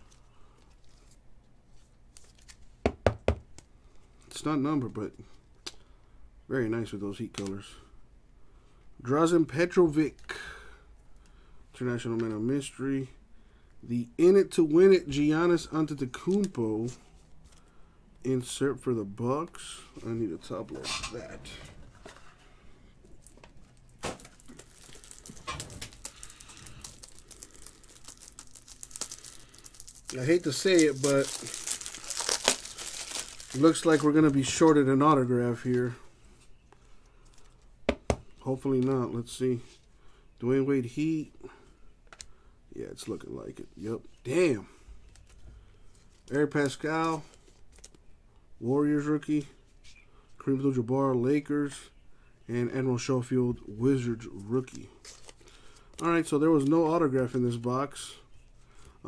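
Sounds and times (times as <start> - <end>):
trading cards clicking and rustling: 23.2 - 34.9.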